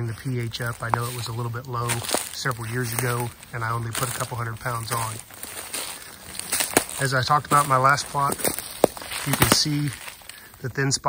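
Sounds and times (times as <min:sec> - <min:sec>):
footsteps through dry grass and leaves: 0:00.0 - 0:10.8.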